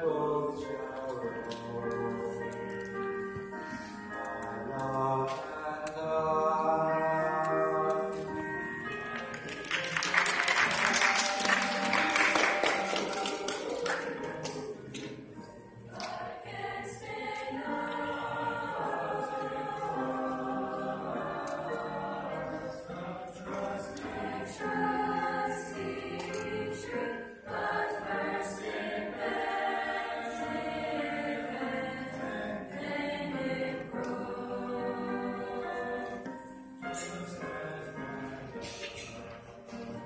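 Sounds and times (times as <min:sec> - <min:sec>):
choir singing held chords: 0:00.0 - 0:40.0
audience applauding: 0:09.1 - 0:14.7.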